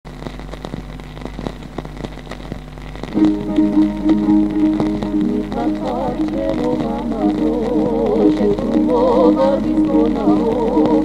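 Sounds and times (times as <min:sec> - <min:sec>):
record surface crackle: 0:00.0 - 0:11.0
low steady hum: 0:00.1 - 0:11.0
instrumental song introduction: 0:03.1 - 0:11.0.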